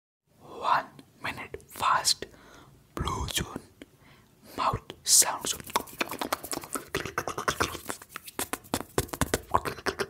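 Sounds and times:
mouth clicks: 4.8s - 10.0s.

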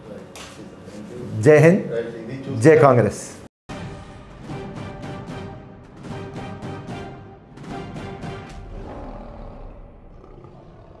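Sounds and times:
lion roar: 8.5s - 11.0s.

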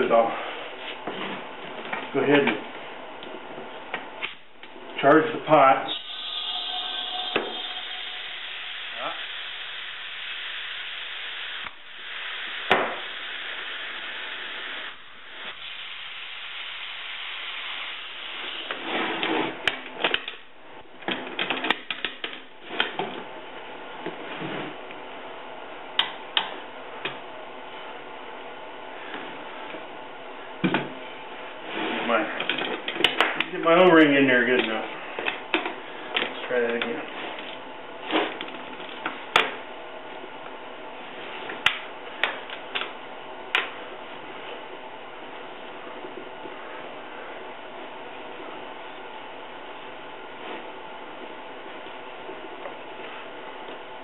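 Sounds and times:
compressed air hissing: 5.9s - 18.8s.

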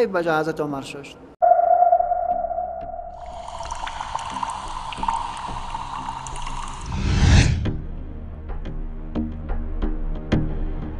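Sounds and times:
synthesized held tone: 1.4s - 4.0s
higher shimmering synth layer: 1.4s - 4.2s.

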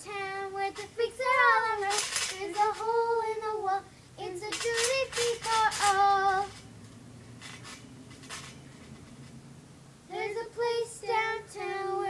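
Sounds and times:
child singing: 0.0s - 6.6s, 10.1s - 12.0s
short hissy sounds: 0.3s - 11.8s.

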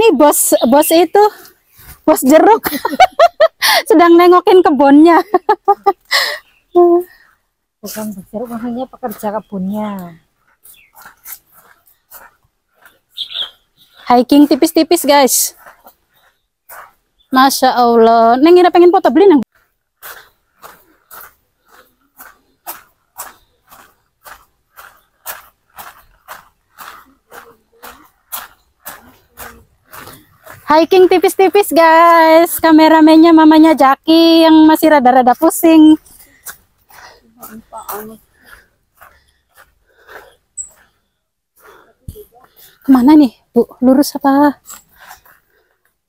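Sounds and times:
heavy breathing: 6.0s - 7.6s, 19.5s - 30.7s, 36.0s - 42.9s, 44.6s - 46.0s
footsteps on concrete: 7.9s - 17.6s, 18.6s - 33.6s, 35.3s - 41.0s.

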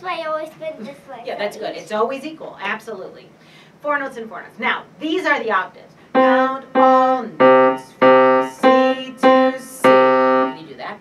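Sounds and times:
grand piano octaves: 6.1s - 10.6s.

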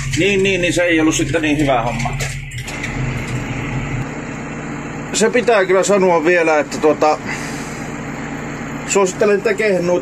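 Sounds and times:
tractor engine droning: 0.0s - 10.0s.

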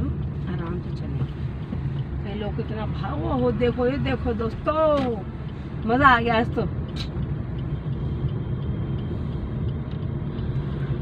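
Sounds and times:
car engine rumble: 0.0s - 11.0s
tyres on road: 0.0s - 11.0s.

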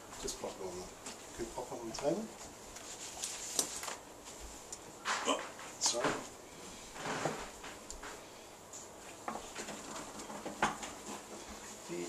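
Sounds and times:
soft knocks clicks and rustles: 8.8s - 11.6s.

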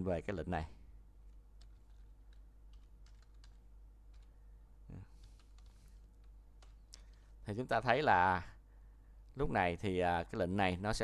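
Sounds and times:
keyboard typing: 1.6s - 4.4s, 5.1s - 7.3s.

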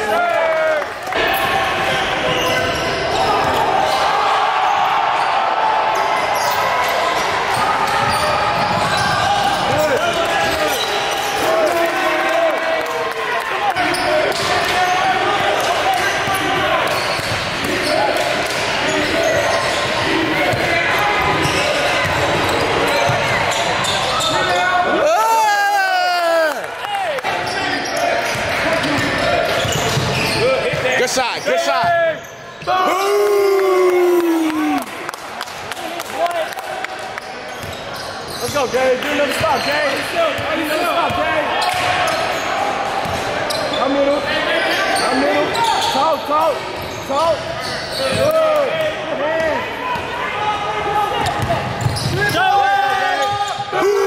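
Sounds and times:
echoing shouting and chatter: 0.0s - 54.0s
shoe squeals: 1.3s - 5.4s, 6.0s - 11.4s, 13.8s - 18.2s, 18.8s - 24.9s, 27.4s - 33.2s, 37.2s - 48.6s, 50.4s - 53.8s.

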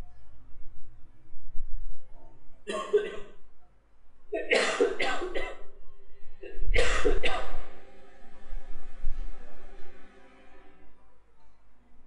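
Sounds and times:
person coughing: 2.7s - 3.4s, 4.4s - 5.7s, 6.4s - 7.7s.

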